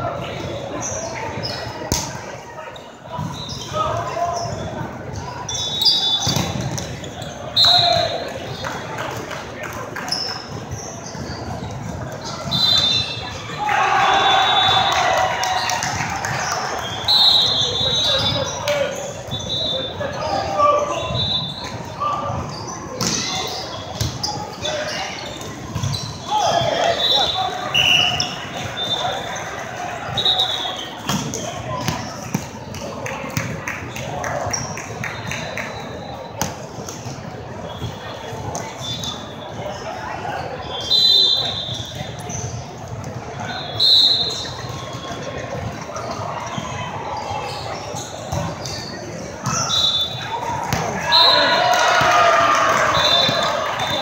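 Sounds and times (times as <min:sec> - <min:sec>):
sneakers squeaking on floor: 0:00.2 - 0:08.7, 0:10.0 - 0:13.5, 0:16.4 - 0:32.8, 0:33.4 - 0:54.0
players calling out: 0:12.2 - 0:36.4, 0:43.3 - 0:54.0.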